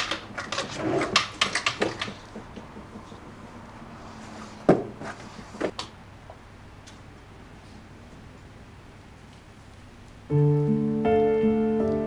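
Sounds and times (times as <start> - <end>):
knocks and clatters: 0.0 - 3.4
drawer being pulled open: 0.4 - 1.4.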